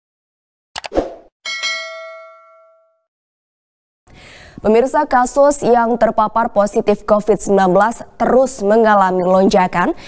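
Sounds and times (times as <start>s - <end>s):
bright bell ding: 1.5s - 3.1s.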